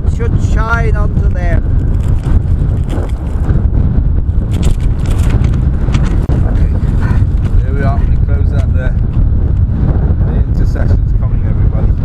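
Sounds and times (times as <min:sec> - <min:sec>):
strong wind buffeting microphone: 0:00.0 - 0:12.0
paper pages flapping: 0:01.8 - 0:03.5, 0:04.4 - 0:07.6.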